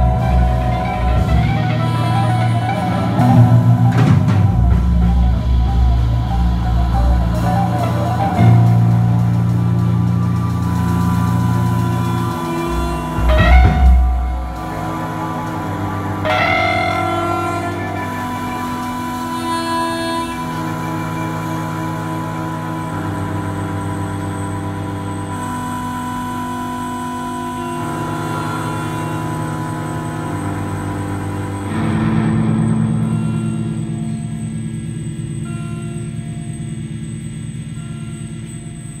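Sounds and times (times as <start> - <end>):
ambient keyboard music: 0.0 - 39.0.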